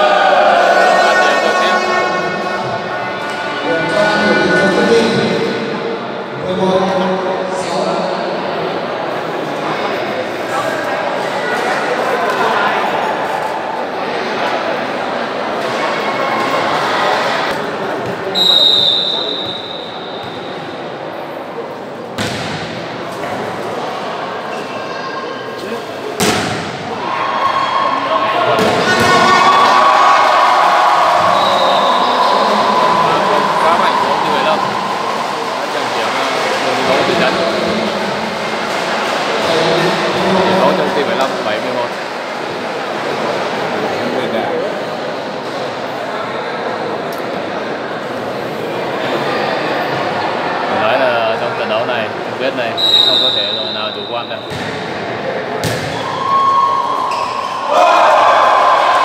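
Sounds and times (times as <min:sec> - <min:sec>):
crowd cheering: 0:00.0 - 0:06.1, 0:26.5 - 0:43.8, 0:55.7 - 0:59.0
spectators chattering: 0:00.0 - 0:59.0
referee's whistle: 0:18.3 - 0:20.5, 0:31.2 - 0:32.5, 0:52.8 - 0:54.5
volleyball strikes: 0:22.2 - 0:23.4, 0:26.2 - 0:27.0, 0:54.4 - 0:55.0, 0:55.6 - 0:56.2.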